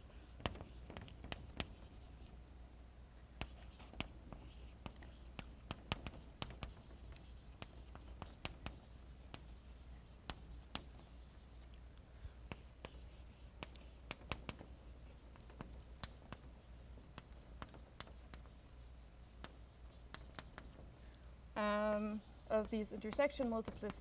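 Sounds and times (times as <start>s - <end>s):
chalk writing on blackboard: 0.0s - 2.3s, 3.4s - 11.8s, 12.5s - 20.8s, 21.8s - 24.0s.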